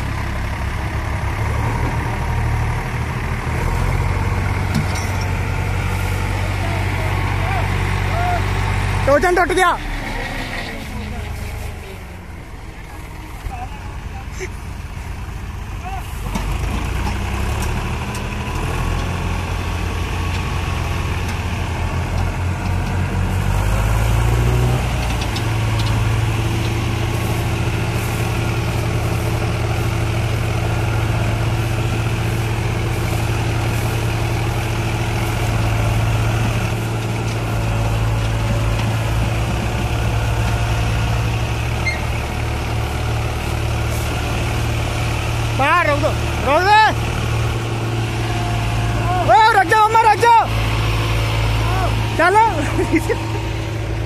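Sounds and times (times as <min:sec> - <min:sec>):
tractor diesel engine under load: 0:00.0 - 0:54.0.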